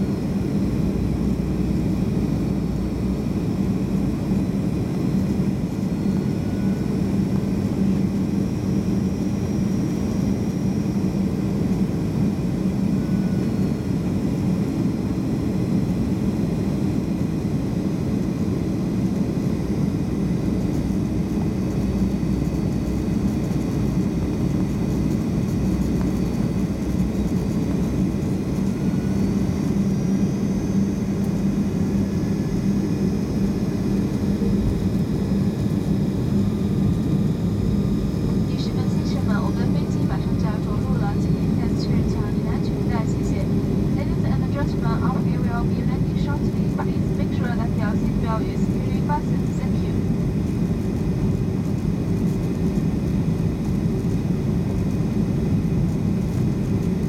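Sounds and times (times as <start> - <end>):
airliner cabin engine rumble: 0.0 - 57.0.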